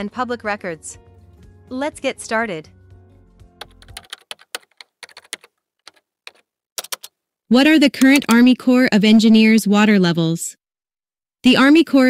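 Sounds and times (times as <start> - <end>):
background music: 0.0 - 4.7
computer keyboard typing: 3.6 - 7.2, 8.0 - 8.5.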